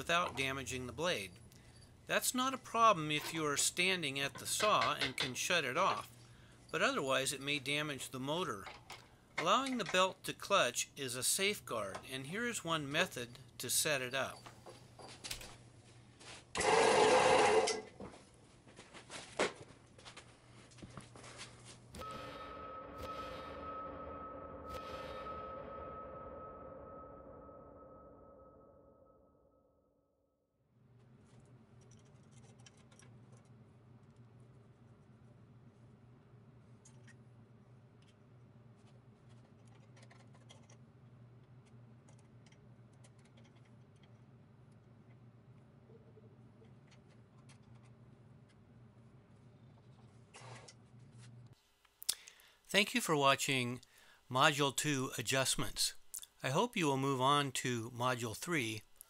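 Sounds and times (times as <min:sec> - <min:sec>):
rubbing and handling noise: 0:14.2 - 0:21.9, 0:31.0 - 0:51.6.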